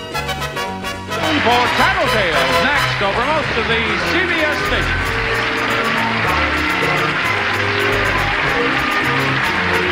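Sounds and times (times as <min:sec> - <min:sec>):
game show theme music: 0:00.0 - 0:09.9
announcer speaking: 0:01.2 - 0:05.3.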